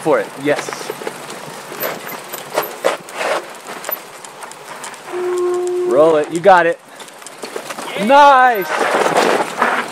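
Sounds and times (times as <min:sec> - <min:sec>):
tyres rumbling on dirt: 0:00.0 - 0:09.9
wheels and frame jolting over rocks: 0:00.0 - 0:09.9.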